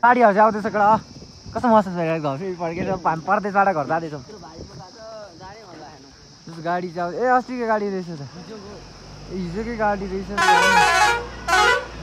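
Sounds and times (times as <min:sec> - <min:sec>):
crickets droning: 0:00.0 - 0:12.0.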